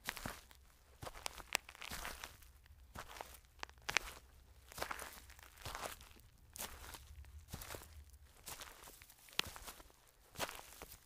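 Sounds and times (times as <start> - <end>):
footsteps crunching dry leaves: 0.0 - 11.0.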